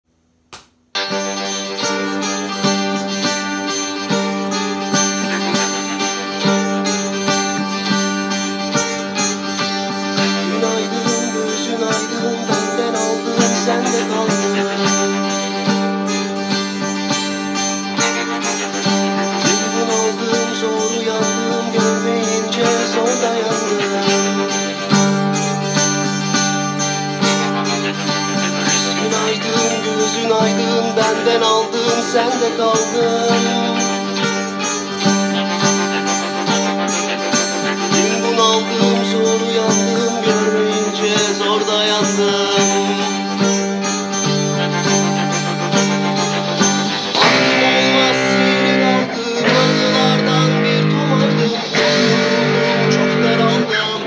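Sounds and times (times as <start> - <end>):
rock backing track: 0.5 - 54.0
electric guitar: 0.6 - 54.0.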